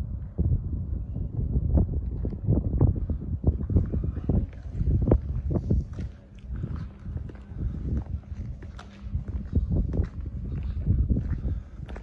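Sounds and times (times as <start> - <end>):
wind buffeting microphone: 0.0 - 12.0
footsteps on cobblestones: 2.0 - 12.0.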